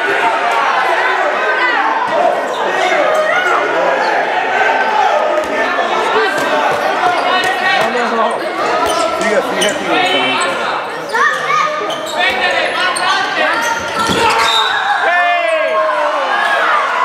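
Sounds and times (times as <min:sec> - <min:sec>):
voices calling and chattering: 0:00.0 - 0:17.0.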